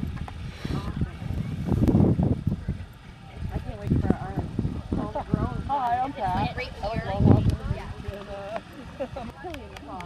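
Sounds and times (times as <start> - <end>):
chatter of several voices: 0.6 - 10.0.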